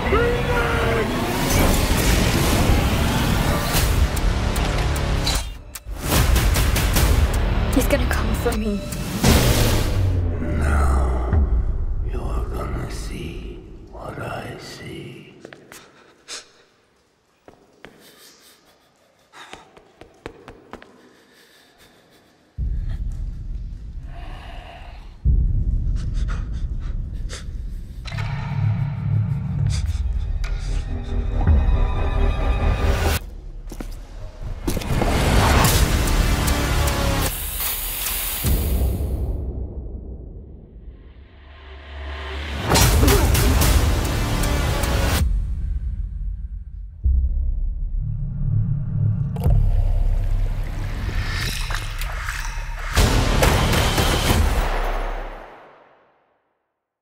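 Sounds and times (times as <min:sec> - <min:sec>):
breathy panting sound: 0:17.9 - 0:23.2, 0:24.0 - 0:28.1.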